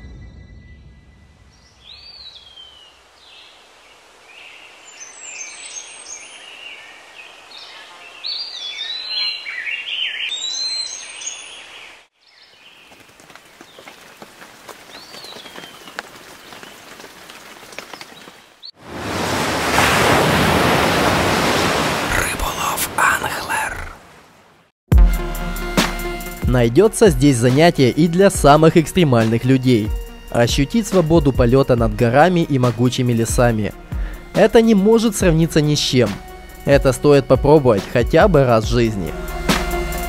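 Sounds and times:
outdoor background noise: 0:00.0 - 0:24.7
birds singing: 0:01.5 - 0:18.8
wave breaking and splashing: 0:18.8 - 0:24.3.

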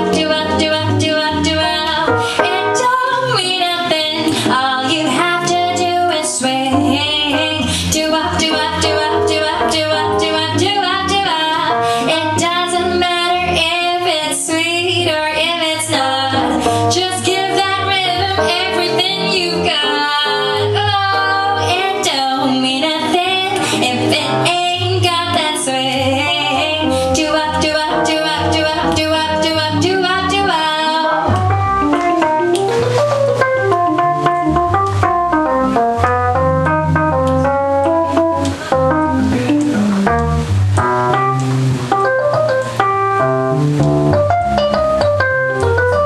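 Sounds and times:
woman singing jazz: 0:00.0 - 0:33.0
electronic organ keyboard melody: 0:00.0 - 0:46.0
low instrumental accompaniment: 0:22.8 - 0:46.0
low bass line: 0:23.2 - 0:46.0.

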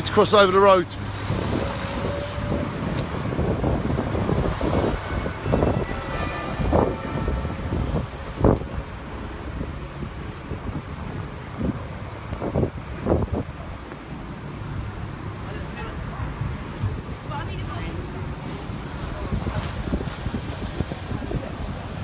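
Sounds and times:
heavy vehicle engine rumbling: 0:00.0 - 0:22.0
street traffic: 0:00.0 - 0:22.0.

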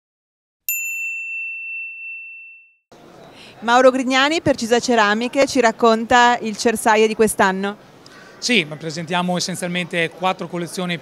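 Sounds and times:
high clear ding: 0:00.7 - 0:02.8.

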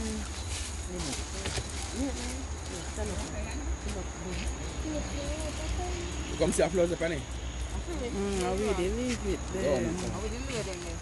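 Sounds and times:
people talking: 0:00.9 - 0:07.2, 0:07.8 - 0:11.0.

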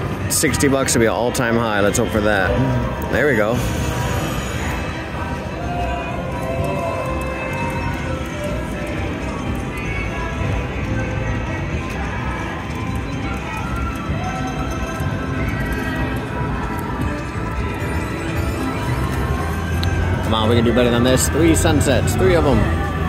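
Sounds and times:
slot machine music and effects: 0:00.1 - 0:23.0.

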